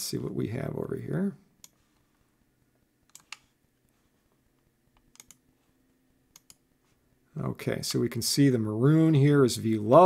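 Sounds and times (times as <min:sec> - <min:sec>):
computer mouse clicks: 0:01.6 - 0:02.0, 0:03.1 - 0:03.5, 0:05.0 - 0:05.4, 0:06.3 - 0:06.6.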